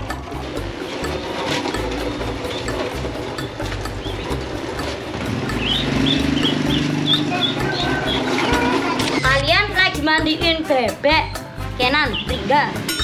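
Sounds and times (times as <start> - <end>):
ducklings peeping: 3.9 - 4.4, 5.3 - 9.2.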